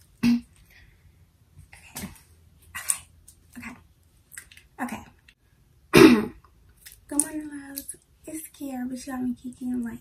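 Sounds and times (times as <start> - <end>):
woman clearing her throat: 5.9 - 6.4.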